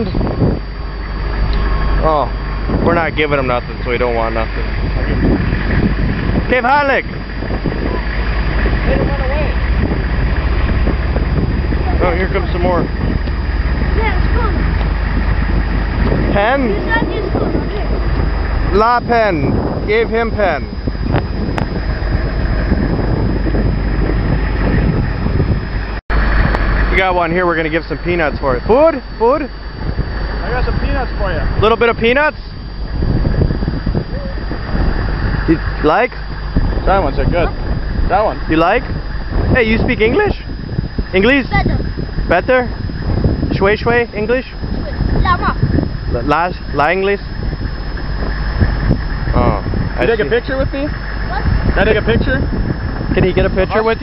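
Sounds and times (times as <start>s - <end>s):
vehicle engine idling: 0.0s - 54.0s
wind buffeting microphone: 0.0s - 54.0s.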